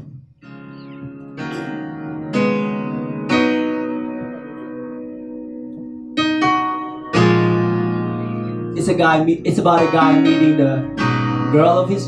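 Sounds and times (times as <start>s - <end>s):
guitar chords: 0.0s - 12.0s
keyboard chords: 0.0s - 12.0s.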